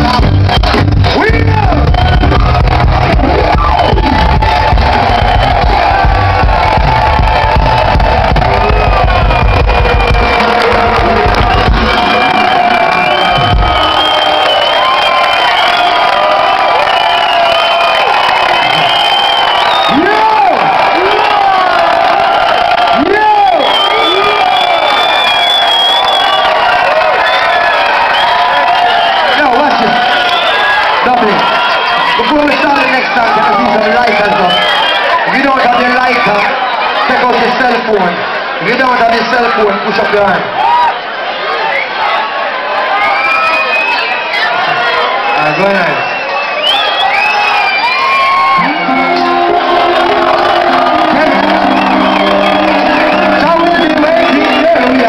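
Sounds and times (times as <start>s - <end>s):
bass-heavy reggae band music: 0.0s - 14.6s, 48.5s - 55.0s
crowd cheering and whooping: 0.0s - 55.0s.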